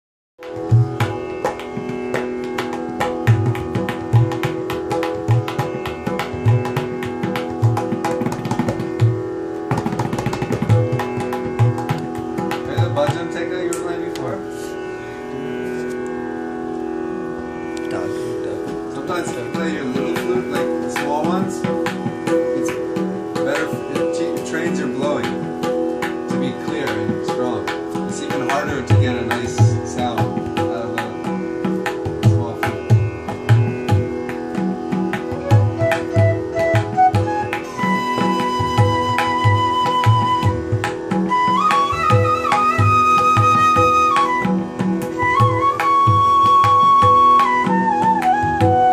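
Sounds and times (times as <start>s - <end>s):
tabla played by hand: 0.4s - 16.5s, 17.5s - 48.9s
steady held drone: 0.5s - 45.2s
bamboo flute: 17.2s - 48.9s.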